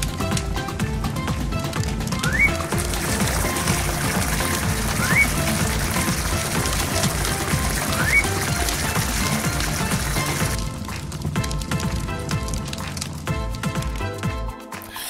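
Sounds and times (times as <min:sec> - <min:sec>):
cartoon background music: 0:00.0 - 0:15.0
fire hose spraying water: 0:00.0 - 0:15.0.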